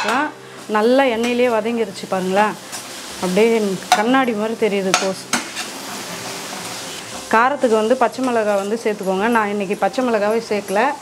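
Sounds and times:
steady sizzle: 0:00.0 - 0:11.0
spoon scraping pan: 0:04.9 - 0:07.3.

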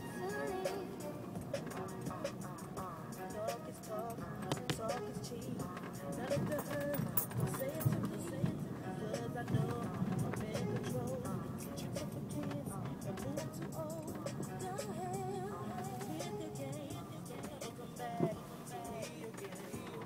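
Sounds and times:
music with singing voice: 0:00.0 - 0:20.0
car cabin noise: 0:00.1 - 0:20.0.

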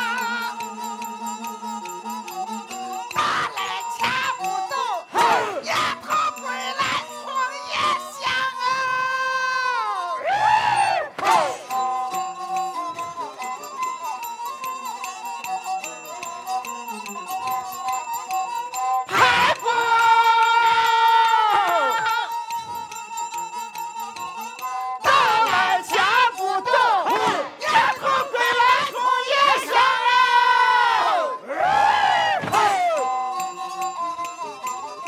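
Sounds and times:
performers shouting together: 0:05.1 - 0:11.7, 0:19.1 - 0:22.3, 0:25.0 - 0:33.1
instruments holding notes: 0:10.8 - 0:35.0.

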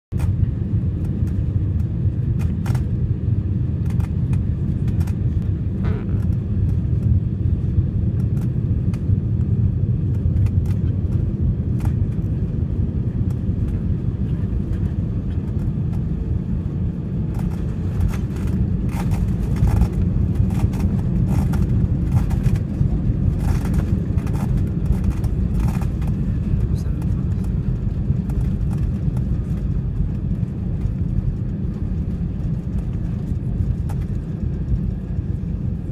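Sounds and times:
jet engines and airflow rumble: 0:00.1 - 0:35.9.

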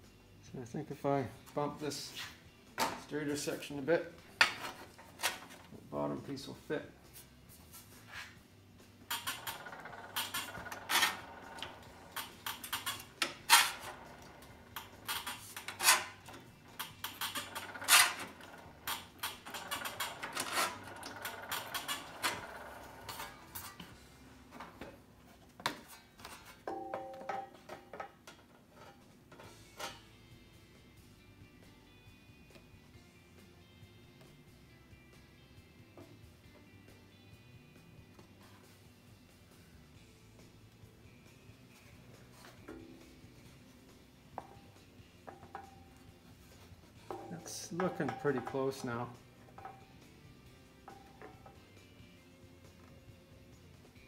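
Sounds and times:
faint background music: 0:00.0 - 0:54.0
metallic clanks and rattles: 0:09.0 - 0:24.0, 0:47.0 - 0:51.8.

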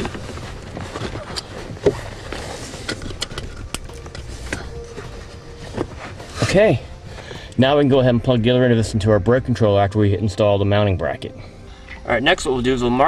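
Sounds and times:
cable rustling: 0:00.0 - 0:08.4.

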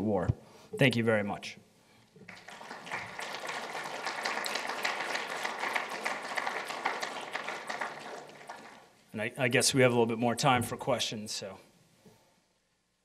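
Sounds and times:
audience applauding: 0:02.3 - 0:08.9.

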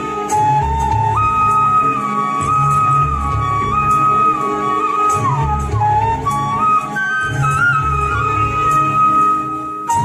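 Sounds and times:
bamboo flute melody: 0:00.0 - 0:10.0.

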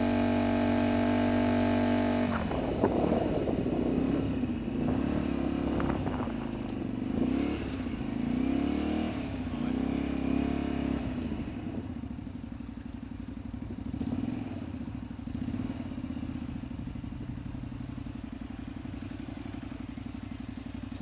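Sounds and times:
motorcycle engine at low revs: 0:00.0 - 0:21.0.

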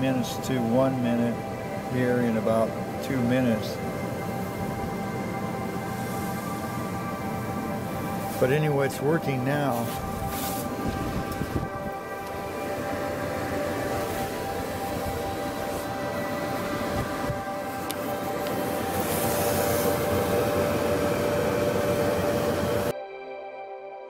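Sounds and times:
clothes dryer running: 0:00.0 - 0:22.9.

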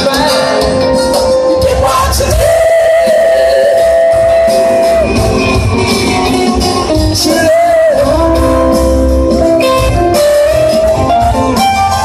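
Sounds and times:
live rock band and choir: 0:00.0 - 0:12.0.

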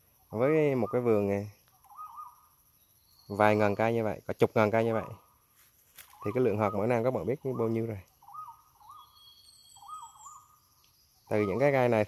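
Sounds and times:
birds calling faintly: 0:00.0 - 0:12.0
thin high bird whistles: 0:01.7 - 0:03.4, 0:06.0 - 0:07.0, 0:07.6 - 0:11.7.

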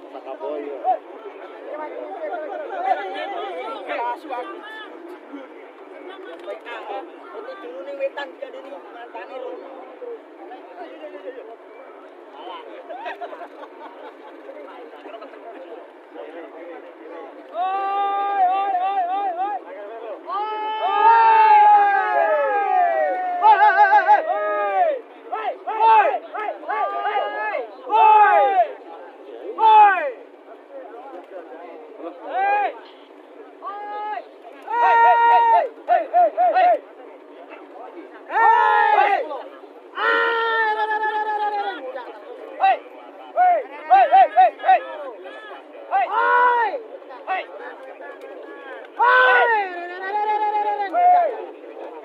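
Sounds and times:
men shouting high wavering calls: 0:17.5 - 0:28.8, 0:29.5 - 0:30.3, 0:33.6 - 0:36.8, 0:38.3 - 0:47.5, 0:49.0 - 0:51.5.

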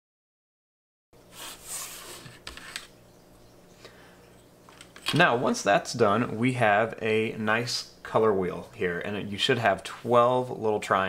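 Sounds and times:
light scuffing on paper: 0:01.3 - 0:02.9.

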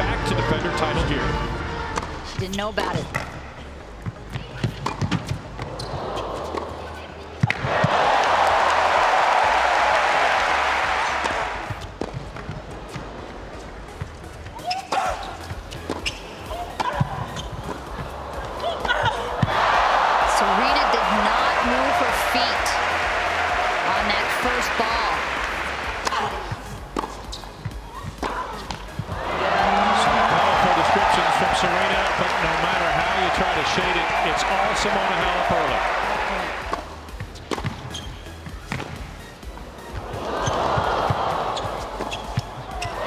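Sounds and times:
tennis racket hitting ball: 0:04.3 - 0:05.7, 0:14.8 - 0:19.6, 0:25.4 - 0:29.1, 0:36.7 - 0:38.1
crowd applause and cheering: 0:07.5 - 0:12.7, 0:17.7 - 0:27.0, 0:28.9 - 0:37.2, 0:39.9 - 0:43.0.

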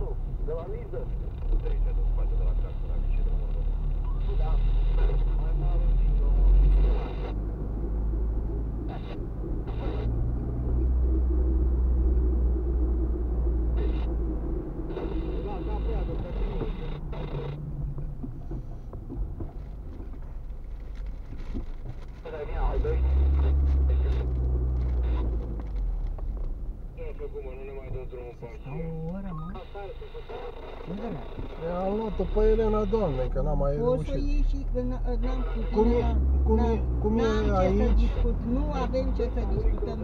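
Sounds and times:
voices: 0:00.0 - 0:07.5, 0:08.1 - 0:10.2, 0:13.6 - 0:18.8, 0:22.2 - 0:26.0, 0:26.9 - 0:40.0
car driving rumble: 0:00.0 - 0:40.0.

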